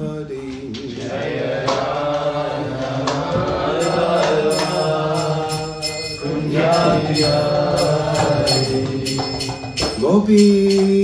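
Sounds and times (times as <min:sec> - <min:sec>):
group chanting: 0:00.7 - 0:09.5
hand cymbals striking: 0:03.2 - 0:11.0.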